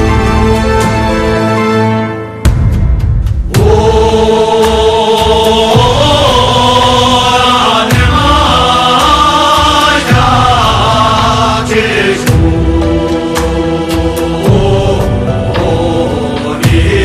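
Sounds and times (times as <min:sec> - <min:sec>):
heavy low drum beat: 0:02.4 - 0:17.0
voices chanting in unison: 0:03.5 - 0:17.0.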